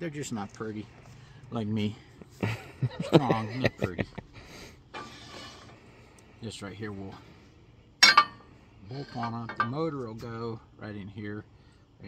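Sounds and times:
metal bracket clanking on steel: 0:08.0 - 0:10.0.

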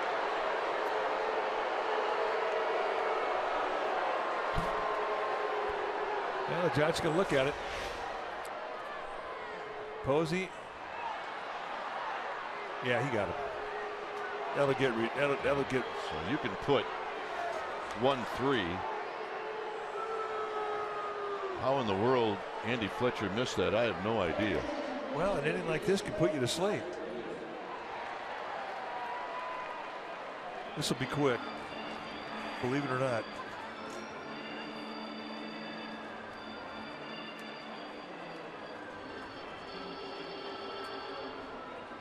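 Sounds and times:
murmur of crowd: 0:24.2 - 0:29.1.

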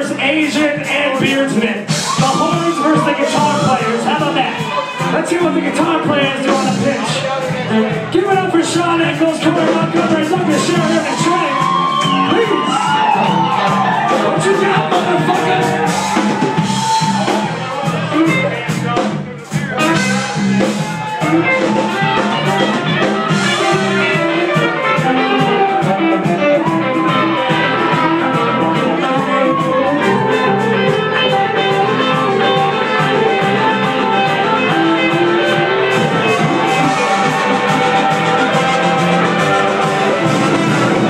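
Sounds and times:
drum kit cymbal beat: 0:00.0 - 0:41.0
live band playing loud music: 0:00.0 - 0:41.0
shouted voices: 0:00.0 - 0:41.0.

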